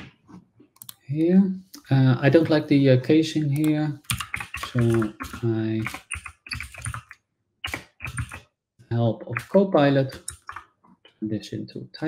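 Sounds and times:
computer keyboard typing: 0:03.6 - 0:08.4, 0:09.3 - 0:10.7.

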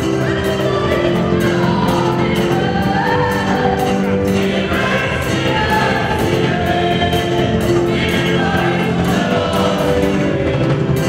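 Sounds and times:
church choir singing: 0:00.0 - 0:11.0
instrumental accompaniment with beat: 0:00.0 - 0:11.0.

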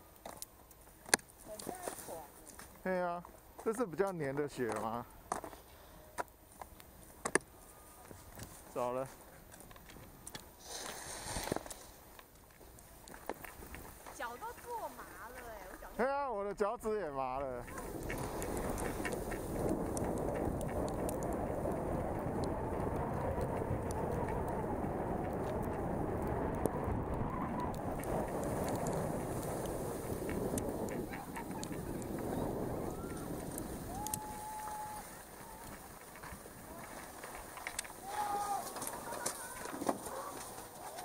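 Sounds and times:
skis hissing on snow: 0:10.6 - 0:12.0, 0:17.7 - 0:19.8, 0:28.2 - 0:39.6
wind rushing over microphone: 0:17.6 - 0:37.1.

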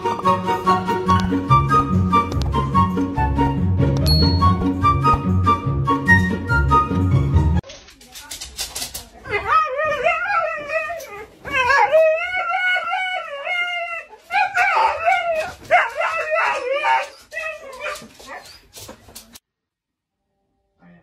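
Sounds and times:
husky howling and whining: 0:09.4 - 0:18.6.

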